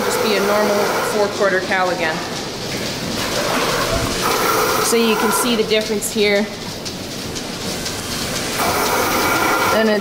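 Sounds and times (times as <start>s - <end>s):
milking machinery hiss and hum: 0.0s - 10.0s.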